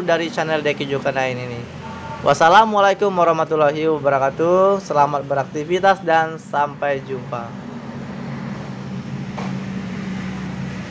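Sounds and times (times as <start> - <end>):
low mechanical hum: 0.0 - 10.9.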